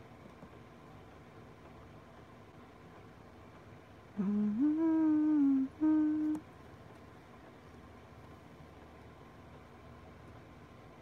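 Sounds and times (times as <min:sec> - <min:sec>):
woman humming: 0:04.2 - 0:06.4.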